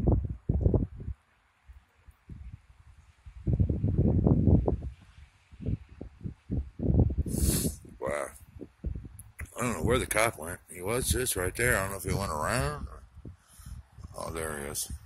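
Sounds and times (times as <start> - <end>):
wind buffeting microphone: 0.0 - 1.2, 2.2 - 15.0.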